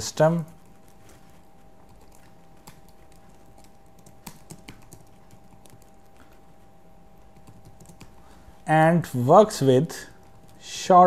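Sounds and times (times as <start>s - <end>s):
keyboard typing: 0.4s - 6.5s, 7.2s - 8.2s.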